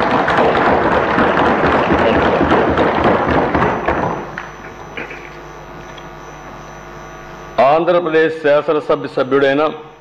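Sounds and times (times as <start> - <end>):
hands thumping desks: 0.0 - 5.1
people clapping: 0.0 - 5.4.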